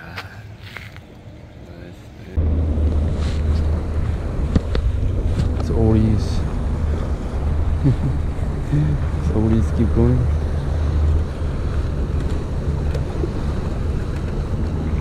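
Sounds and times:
wind buffeting microphone: 2.4 - 15.0.

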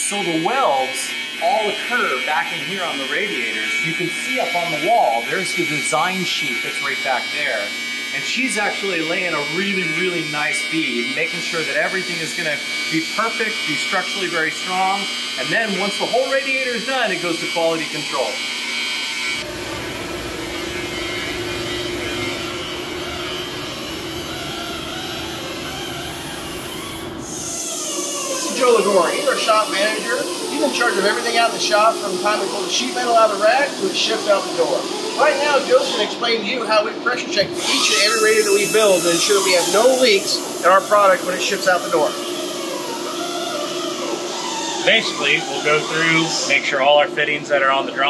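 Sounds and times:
workshop machinery humming: 0.0 - 48.0.

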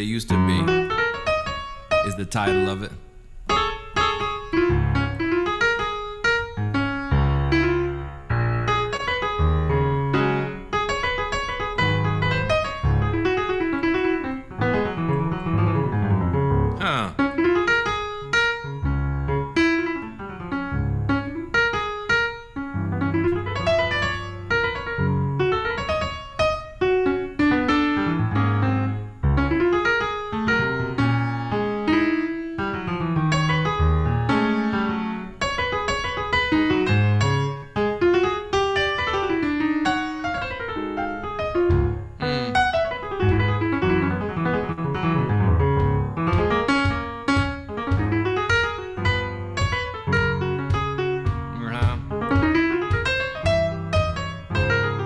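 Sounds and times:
jazz blues piano: 0.0 - 55.0.

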